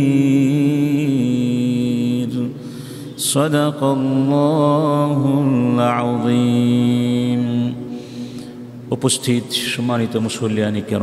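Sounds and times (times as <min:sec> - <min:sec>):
man chanting melodically: 0:00.0 - 0:02.5, 0:03.2 - 0:07.9, 0:08.9 - 0:11.0.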